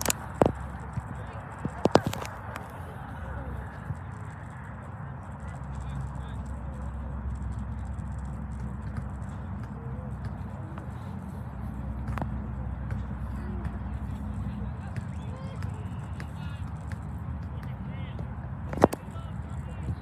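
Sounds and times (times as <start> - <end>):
wind rumbling on microphone: 0.0 - 14.9
faint distant voices: 0.0 - 20.0.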